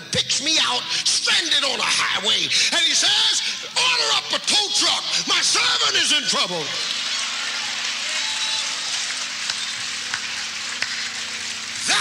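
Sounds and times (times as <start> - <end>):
congregation applauding: 6.6 - 12.0.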